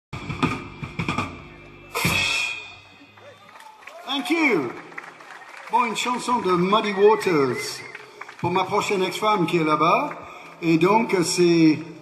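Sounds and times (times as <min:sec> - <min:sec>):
drum kit hits: 0:00.1 - 0:02.9
cymbal crash ringing: 0:01.9 - 0:03.1.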